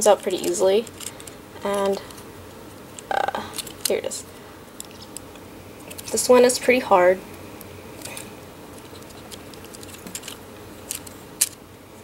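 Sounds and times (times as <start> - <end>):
plastic toy clicks and rubbing: 0.1 - 2.2, 8.0 - 11.6.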